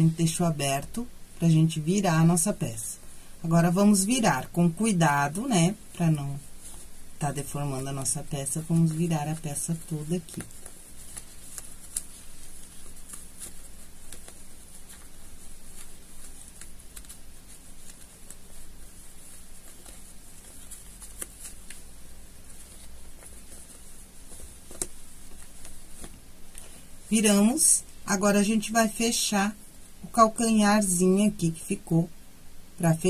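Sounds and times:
fabric rustling: 0.0 - 32.0
faint low hum: 0.0 - 33.0.

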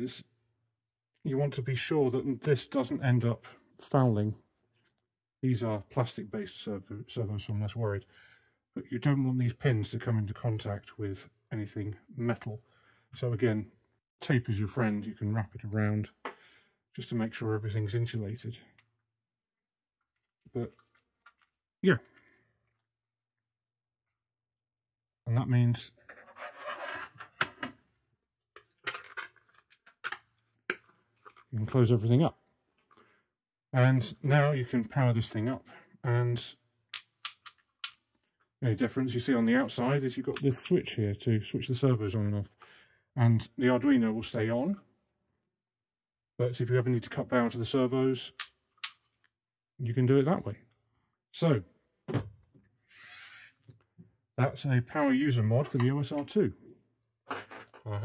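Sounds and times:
plastic clicks and taps: 37.0 - 38.0
brushing sliding sound: 52.9 - 53.6.

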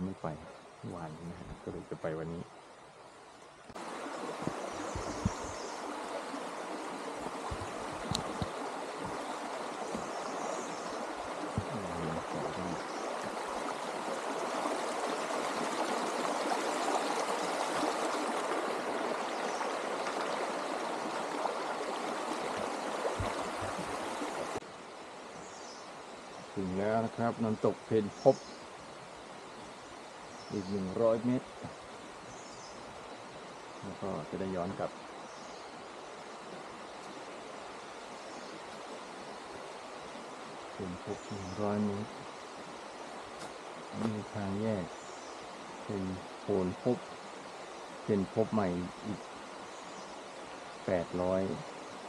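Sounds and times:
waterfall water rushing: 3.7 - 24.7
faint low knocks: 22.6 - 24.0.

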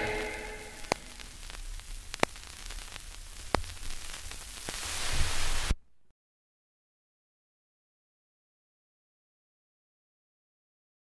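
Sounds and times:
vinyl surface hiss: 0.0 - 5.9.

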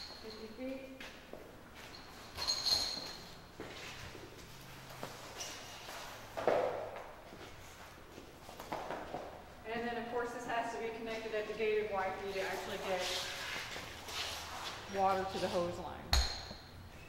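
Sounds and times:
fire hose dragged on concrete: 12.3 - 15.6.

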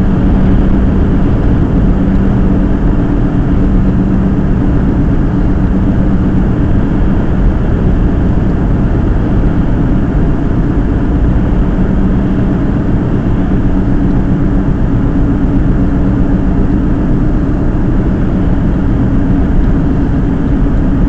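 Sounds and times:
car engine and tyre drone: 0.0 - 21.0.

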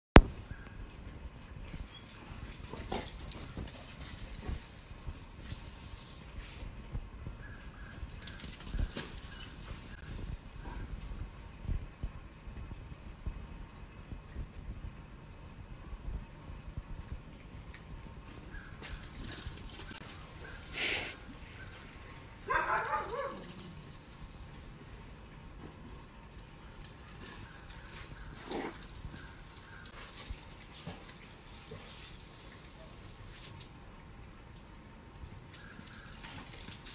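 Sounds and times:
dog moving about: 1.7 - 6.6, 18.3 - 33.7
dog whining yelp: 18.7 - 23.8.

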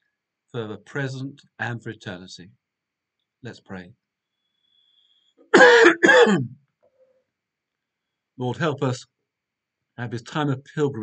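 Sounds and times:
man coughing: 5.6 - 6.5.

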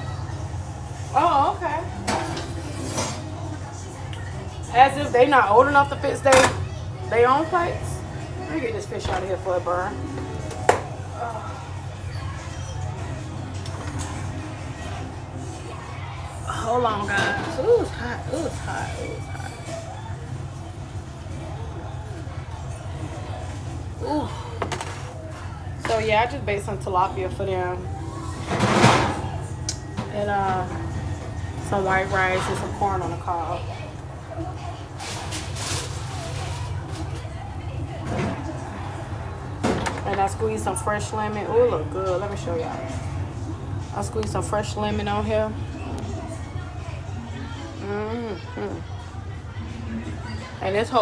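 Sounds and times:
muffled voices: 0.0 - 51.0.

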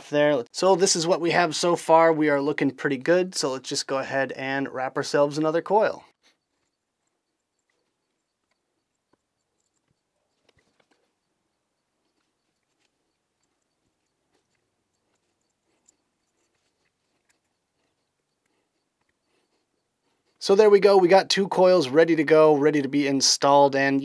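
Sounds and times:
faint ticks of wire winding: 6.1 - 20.4.

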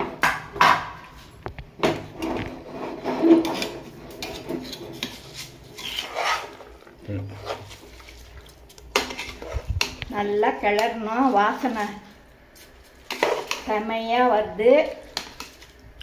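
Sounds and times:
metal ladle scraping a metal pot: 2.2 - 8.2, 8.9 - 9.9.

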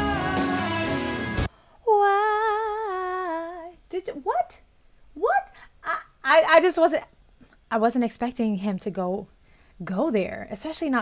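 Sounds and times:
woman singing drawn-out ooh: 0.0 - 3.8.

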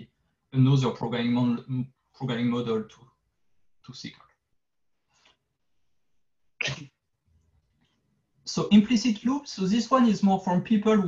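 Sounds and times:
person sneezing: 6.6 - 7.0.

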